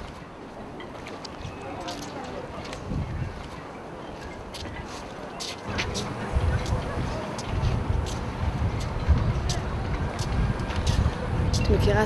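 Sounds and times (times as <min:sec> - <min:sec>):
wind buffeting microphone: 0:00.0 - 0:12.0
hissy ticks: 0:05.4 - 0:11.8.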